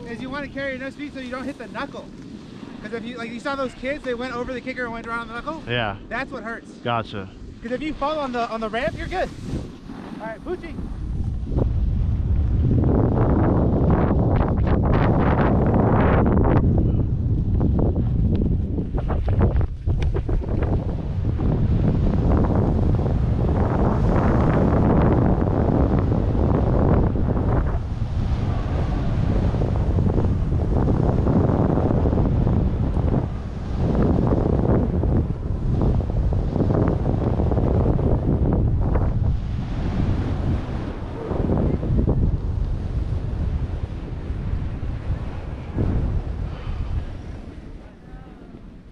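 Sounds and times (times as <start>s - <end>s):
wind buffeting microphone: 0.0s - 48.9s
ski edges scraping snow: 8.2s - 10.7s.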